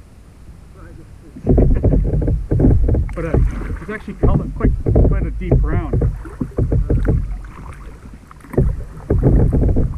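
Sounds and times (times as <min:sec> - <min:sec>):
wind rumbling on microphone: 0:00.9 - 0:09.9
water sloshing around kayak: 0:01.4 - 0:09.9.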